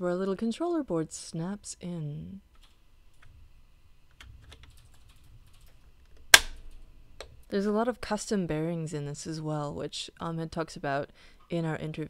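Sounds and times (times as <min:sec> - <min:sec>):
loud plastic snap: 0:06.2 - 0:06.7.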